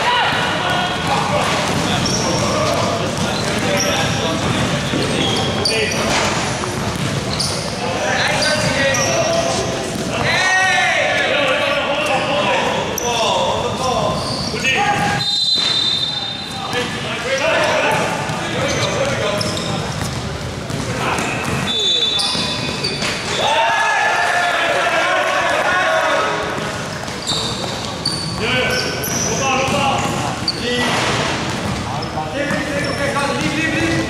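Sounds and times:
sneaker squeaks: 0:00.0 - 0:10.5, 0:11.1 - 0:23.6, 0:26.5 - 0:34.0
basketball bouncing on court: 0:00.3 - 0:07.8, 0:17.6 - 0:23.2, 0:26.4 - 0:34.0.

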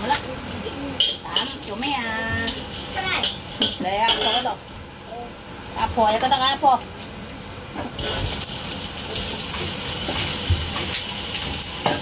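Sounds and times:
kitchenware clinking: 0:02.4 - 0:04.6, 0:09.1 - 0:12.0.

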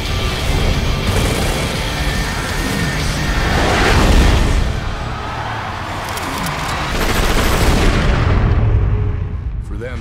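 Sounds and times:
gunfire: 0:06.3 - 0:08.4.

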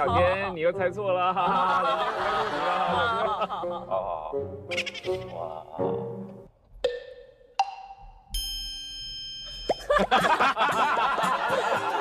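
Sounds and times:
bright ringing chime: 0:08.4 - 0:10.1.

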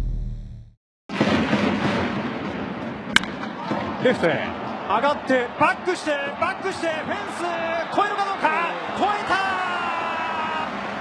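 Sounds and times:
stadium crowd noise: 0:01.4 - 0:11.0
bat cracking ball: 0:03.1 - 0:03.8.

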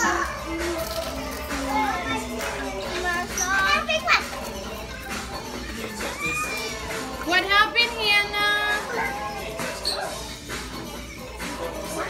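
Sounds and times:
young children chattering: 0:00.0 - 0:10.4
background music: 0:00.0 - 0:12.0.

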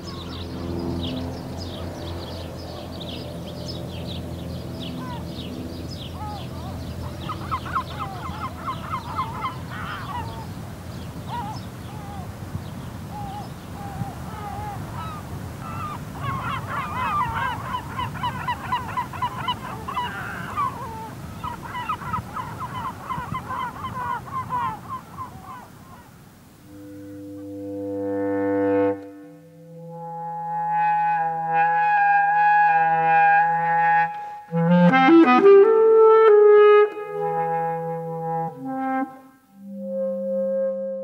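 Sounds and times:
geese calling: 0:04.8 - 0:35.8.

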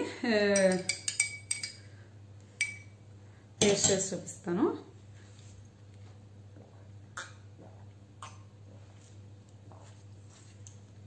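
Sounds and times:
spoon clinking against glass: 0:00.5 - 0:01.9, 0:02.6 - 0:03.0.

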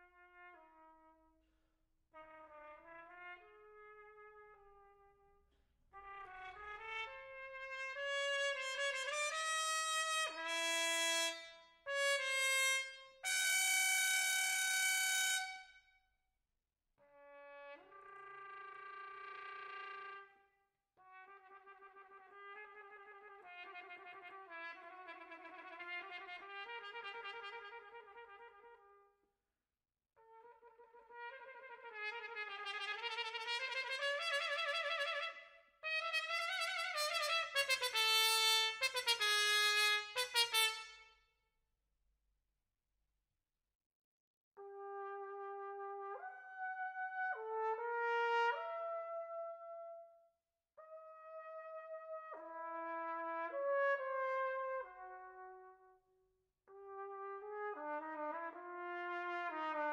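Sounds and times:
cornet playing a melody: 0:30.6 - 0:41.0, 0:56.8 - 0:59.9.

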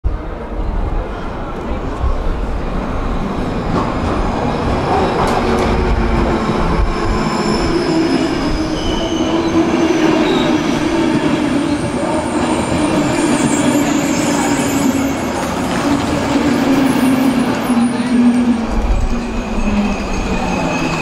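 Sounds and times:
train wheels rumbling on rail: 0:00.1 - 0:21.0
high-pitched wheel squeal: 0:07.0 - 0:10.8.

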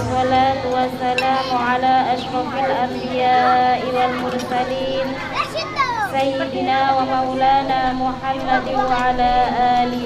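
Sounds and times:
woman singing into a microphone: 0:00.0 - 0:05.2, 0:06.1 - 0:10.0
child calling: 0:05.3 - 0:06.2.

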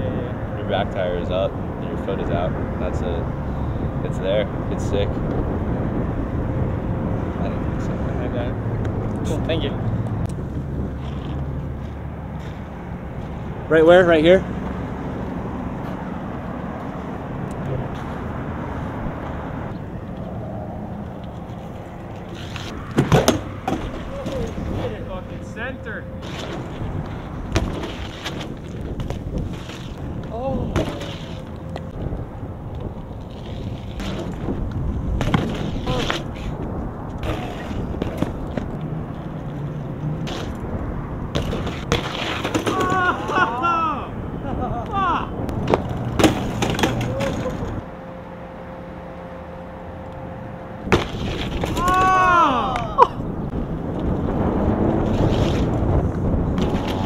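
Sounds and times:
bike tyres rolling on asphalt: 0:00.0 - 0:25.6, 0:26.2 - 0:48.4, 0:50.7 - 0:57.0
bike clattering onto ground: 0:22.4 - 0:24.7, 0:27.5 - 0:31.5, 0:33.3 - 0:34.6, 0:35.2 - 0:36.5, 0:41.3 - 0:43.5, 0:45.6 - 0:47.8, 0:50.9 - 0:52.3
bike knocking against concrete: 0:27.5 - 0:32.0, 0:41.3 - 0:43.4, 0:45.6 - 0:47.8.

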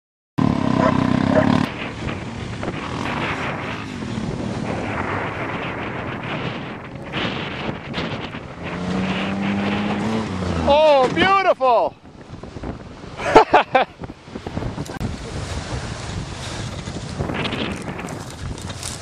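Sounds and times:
minivan engine running: 0:00.4 - 0:04.5
wind buffeting microphone: 0:00.4 - 0:19.0.

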